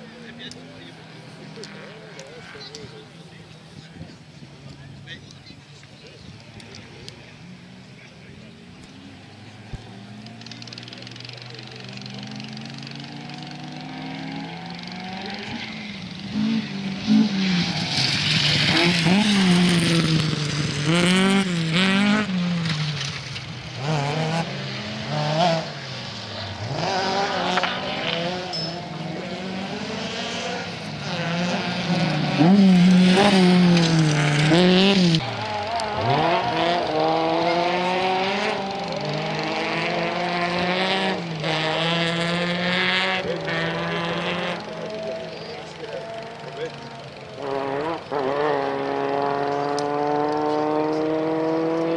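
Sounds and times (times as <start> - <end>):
rally car engine revving: 6.5 - 51.9.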